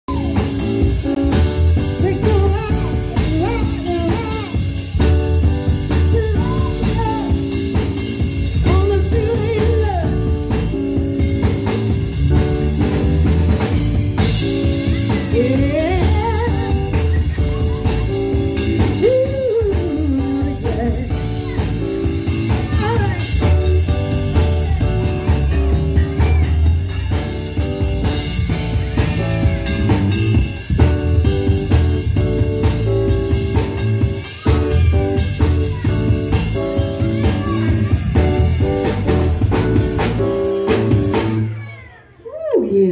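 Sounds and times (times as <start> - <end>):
drum kit: 0.0 - 42.0
guitar: 0.0 - 42.8
keyboard: 0.0 - 42.9
woman singing: 8.6 - 10.2, 15.1 - 17.1, 18.7 - 21.6.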